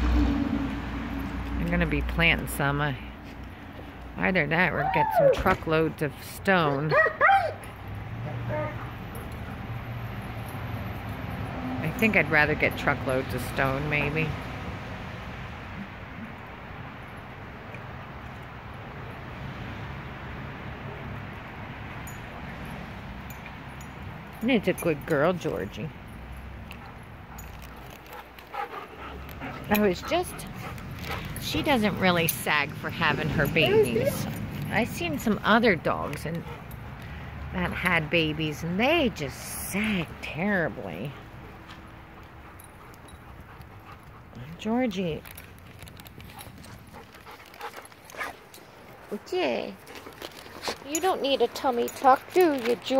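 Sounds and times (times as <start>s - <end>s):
dog scuffing on muddy ground: 45.5s - 52.9s.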